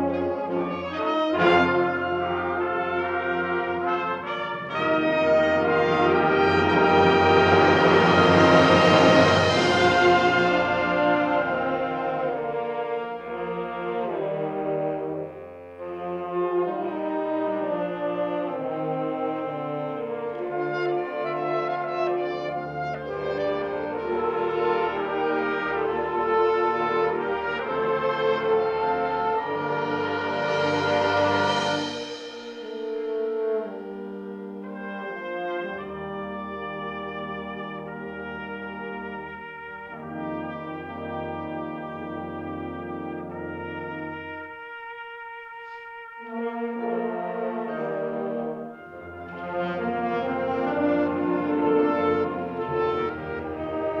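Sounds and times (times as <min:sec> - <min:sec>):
brass sustained chords: 0:00.0 - 0:54.0
wind band playing: 0:00.0 - 0:54.0.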